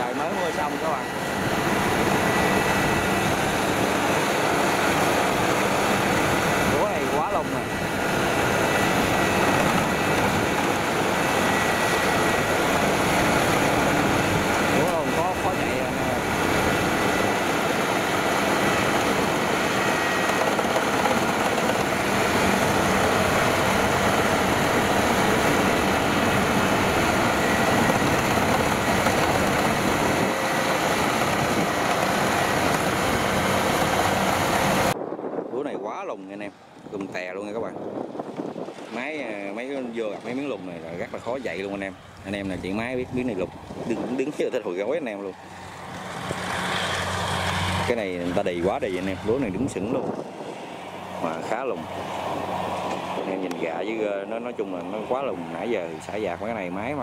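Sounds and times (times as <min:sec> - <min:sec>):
combine harvester diesel engine: 0:00.0 - 0:35.0, 0:40.0 - 0:57.0.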